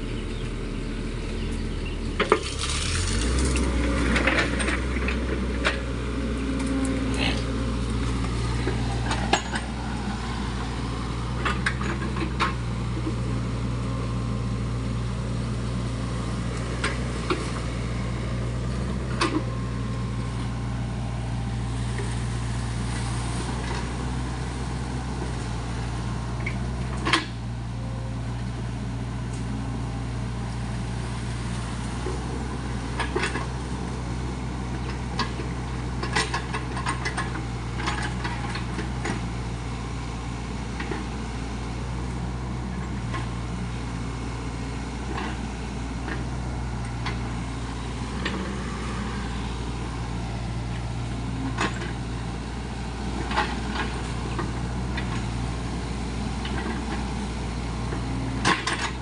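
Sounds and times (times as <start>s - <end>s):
excavator diesel engine running: 0.0s - 59.0s
knocks and clanks of machine: 8.6s - 9.7s, 53.2s - 55.3s, 58.4s - 59.0s.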